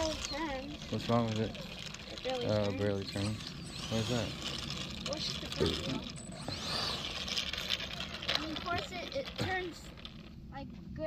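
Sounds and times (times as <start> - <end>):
electric ducted fan whining: 0.0 - 11.0.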